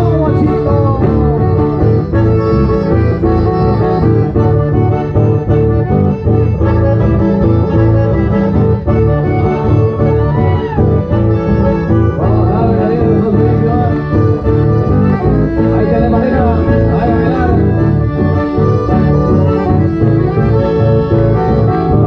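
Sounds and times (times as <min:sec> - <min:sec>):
folk band with accordion: 0:00.0 - 0:22.0.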